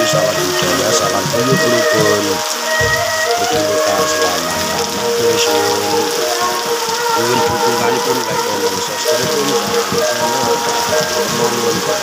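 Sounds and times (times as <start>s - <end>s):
heavy rain on foliage: 0.0s - 12.0s
music: 0.0s - 12.0s
person singing: 0.0s - 12.0s.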